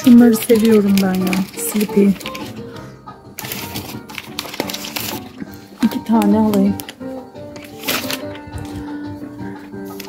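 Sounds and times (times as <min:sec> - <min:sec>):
background music held tones: 0:00.0 - 0:10.0.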